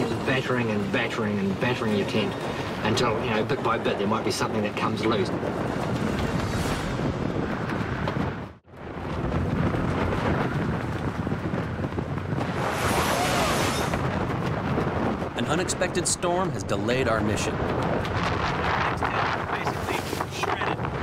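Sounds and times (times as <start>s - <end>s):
strong wind blowing against tents: 0.0s - 21.0s.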